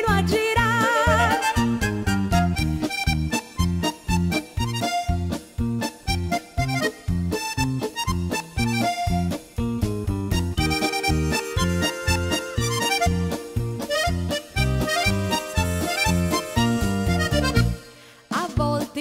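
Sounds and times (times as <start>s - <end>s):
bass notes and chords accompaniment: 0.0s - 18.0s
accordion dance tune: 0.1s - 18.2s.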